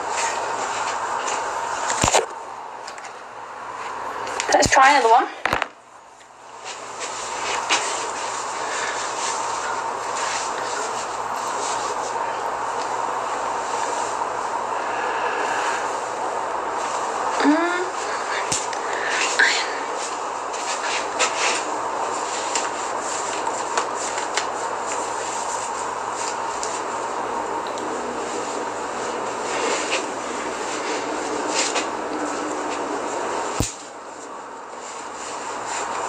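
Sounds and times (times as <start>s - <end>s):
steady background hiss: 0.0s - 36.0s
steady rushing noise: 6.5s - 36.0s.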